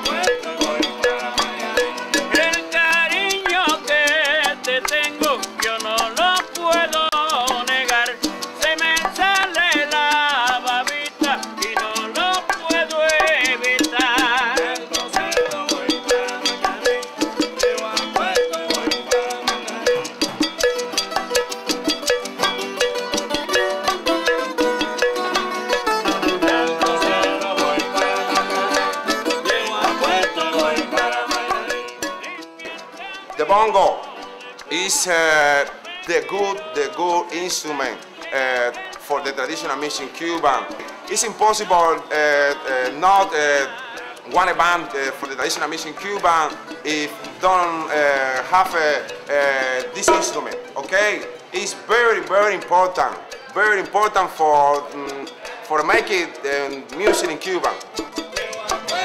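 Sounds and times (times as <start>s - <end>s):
wavering sung voice: 0.0s - 7.9s, 8.9s - 20.2s, 26.1s - 40.2s
acoustic guitar: 0.0s - 59.0s
bongos: 0.0s - 59.0s.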